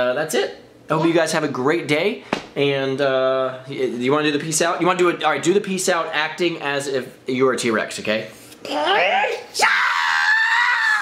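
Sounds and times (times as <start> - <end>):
boy roaring and screaming: 9.4 - 11.0.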